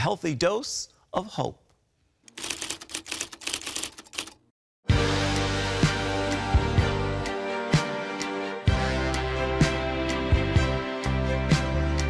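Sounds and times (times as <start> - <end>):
rapid mechanical clicks: 2.3 - 4.4
music: 4.8 - 12.0.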